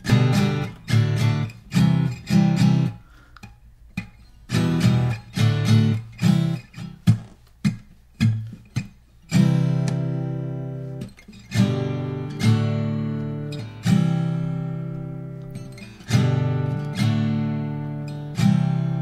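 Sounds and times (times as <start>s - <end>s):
acoustic guitar strumming chords: 0.0s - 19.0s.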